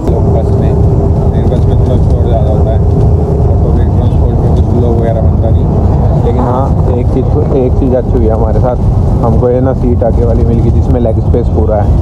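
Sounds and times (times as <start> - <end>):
bus engine rumble: 0.0 - 12.0
steady hum: 0.0 - 12.0.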